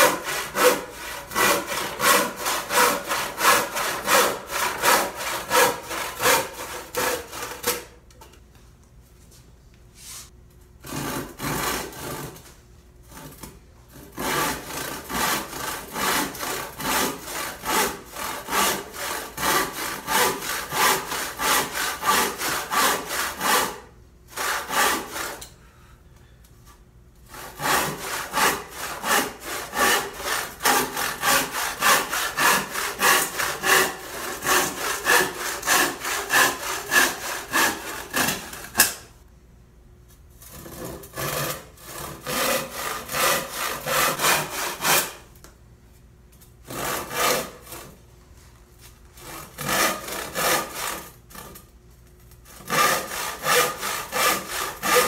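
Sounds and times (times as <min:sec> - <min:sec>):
hand saw cutting wood: 0:00.0 - 0:08.0, 0:10.8 - 0:12.5, 0:13.1 - 0:25.5, 0:27.3 - 0:39.1, 0:40.4 - 0:45.3, 0:46.6 - 0:48.0, 0:49.2 - 0:51.7, 0:52.4 - 0:55.0.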